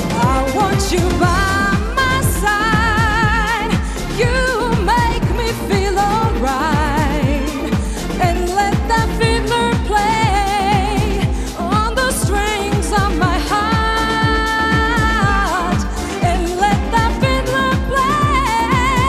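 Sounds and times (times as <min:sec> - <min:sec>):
backing track: 0:00.0 - 0:19.0
steady drum beat: 0:00.0 - 0:19.0
woman singing with vibrato: 0:00.0 - 0:19.0.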